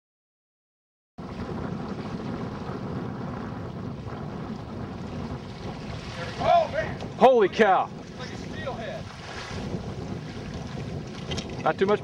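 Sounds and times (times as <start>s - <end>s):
wind buffeting microphone: 1.2s - 12.0s
water rushing through a creek: 1.3s - 12.0s.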